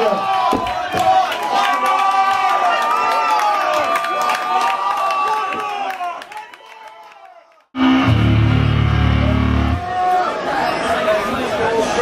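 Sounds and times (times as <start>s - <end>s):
distorted electric guitar note: 7.8s - 9.9s.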